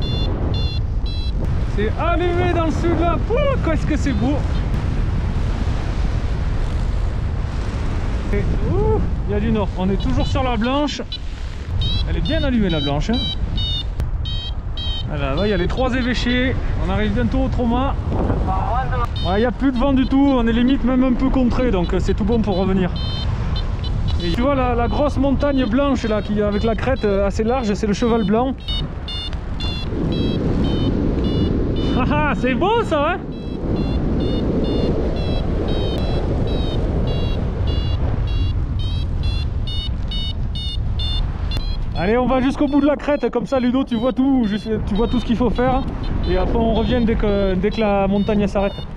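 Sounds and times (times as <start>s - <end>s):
variometer high-pitched beeps: 0.0s - 3.0s, 3.8s - 4.6s, 9.5s - 16.3s, 19.0s - 48.9s
wind rumble on microphone: 0.0s - 48.9s.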